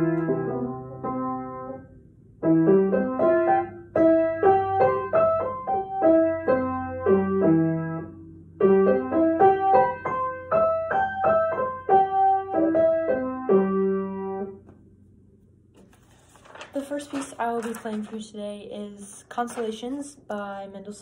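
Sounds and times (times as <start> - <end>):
piano playing arpeggios: 0.0 - 14.6.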